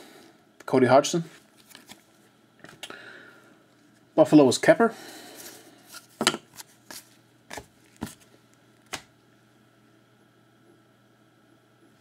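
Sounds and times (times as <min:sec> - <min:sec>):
trading cards slapping and clicking: 0:06.0 - 0:09.1.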